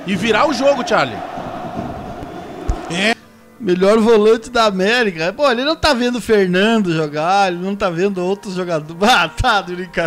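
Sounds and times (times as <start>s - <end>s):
man's voice: 0.0s - 1.3s.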